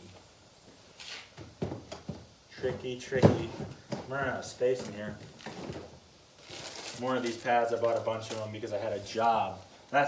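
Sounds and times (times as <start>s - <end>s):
light knocks and clunks: 1.4s - 4.2s.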